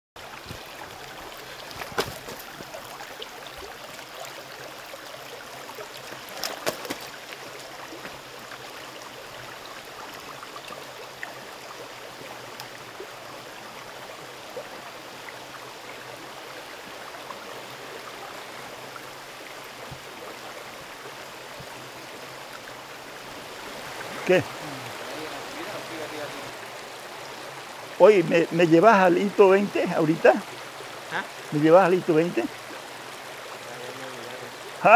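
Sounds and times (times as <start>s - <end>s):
stream running over stones: 0.2s - 34.9s.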